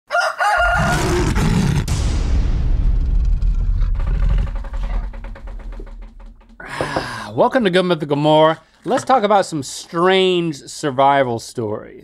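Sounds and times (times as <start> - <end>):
rooster crowing: 0.1 - 1.3
deep steady rumble: 1.8 - 6.7.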